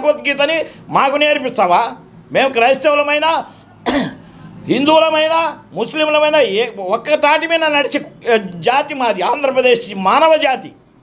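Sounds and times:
man speaking: 0.0 - 3.6, 4.6 - 10.8
man coughing: 3.8 - 4.3.

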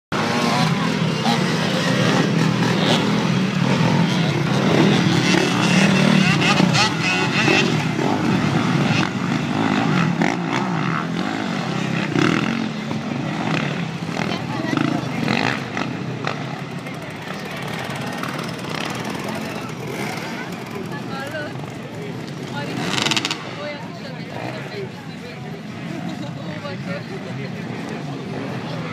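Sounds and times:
dirt bike engines revving: 0.1 - 28.9
voices talking: 0.2 - 28.9.

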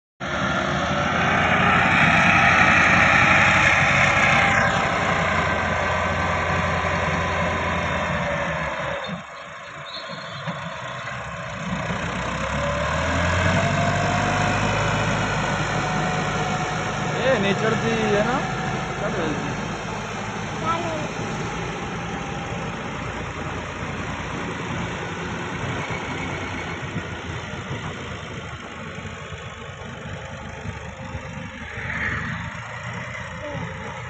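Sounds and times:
tractor diesel engine under load: 0.2 - 34.0.

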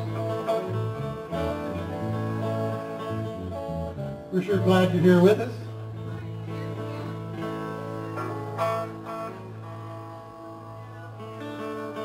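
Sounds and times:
live band playing softly: 0.0 - 12.0.

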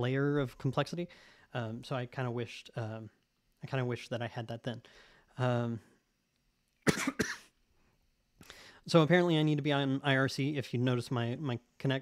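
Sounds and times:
man coughing: 6.8 - 7.6.

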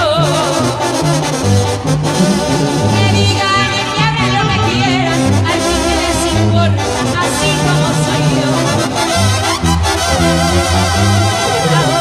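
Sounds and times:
brass band playing: 0.0 - 12.0
tuba bass line: 0.0 - 12.0
person singing: 10.0 - 12.0.

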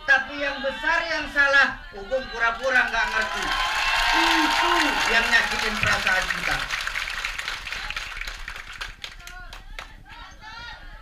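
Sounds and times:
audience applause: 2.6 - 9.9.

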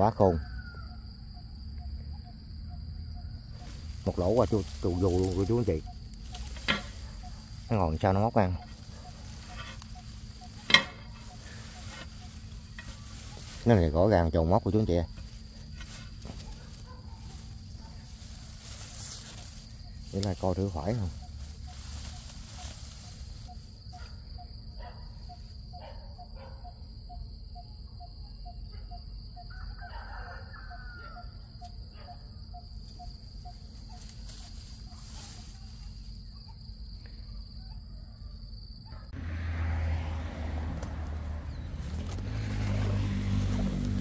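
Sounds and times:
high-pitched insect drone: 0.0 - 37.9
rustling and handling noise: 3.6 - 13.9, 15.1 - 24.2, 32.8 - 36.2.

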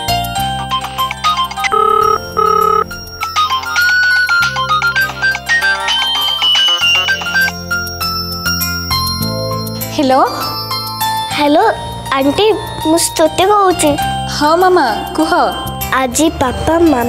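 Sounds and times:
phone ringtone: 1.6 - 4.5.

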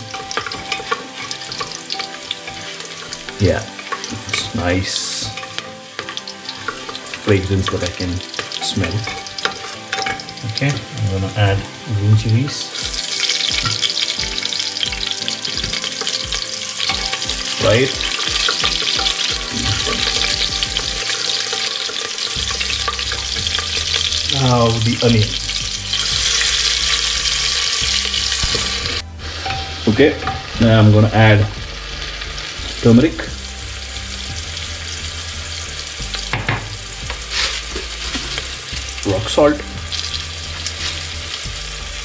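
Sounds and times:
wooden spatula scraping pot: 0.0 - 10.8, 16.8 - 24.4
spices sizzling in hot ghee: 0.0 - 42.0.

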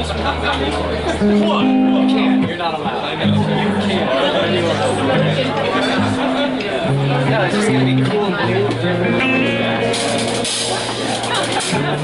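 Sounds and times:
people talking: 0.0 - 12.0
live rock band playing: 1.1 - 2.6, 3.3 - 12.0.

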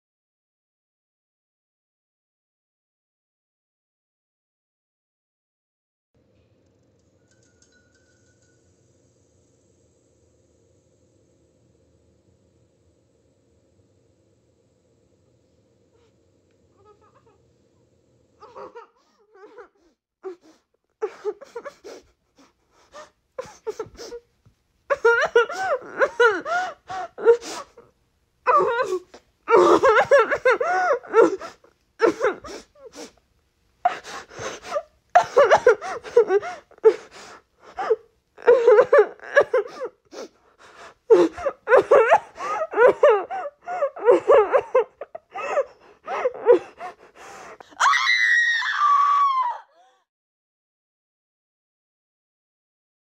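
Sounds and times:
woman whimpering and sobbing: 18.4 - 24.2, 24.9 - 27.8, 28.5 - 33.2, 33.8 - 47.9
woman screaming: 47.6 - 50.0.

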